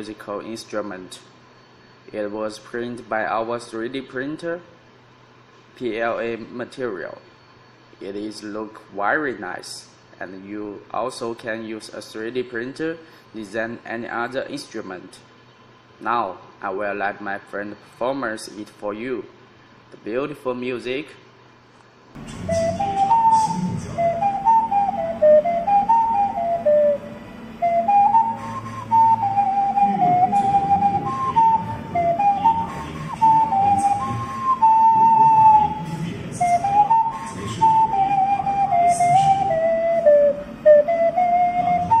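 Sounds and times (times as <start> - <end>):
vessel flute melody: 22.2 - 42.0.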